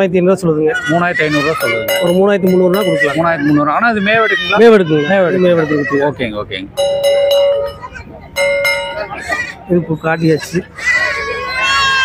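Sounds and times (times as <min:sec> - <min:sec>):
goat kids bleating: 0:00.7 - 0:06.3.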